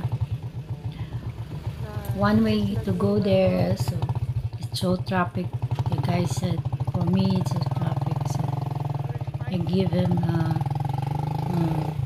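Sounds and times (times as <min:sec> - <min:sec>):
motorcycle engine puttering: 0:00.0 - 0:12.0.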